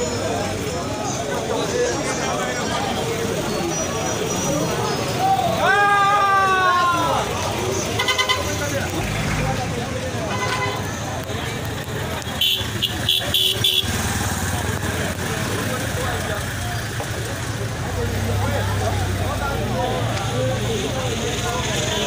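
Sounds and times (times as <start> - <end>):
crowd chatter: 0.0 - 22.0
vehicle engine running: 7.4 - 22.0
vehicle horn tooting: 8.0 - 8.6, 10.3 - 10.9, 12.4 - 14.0.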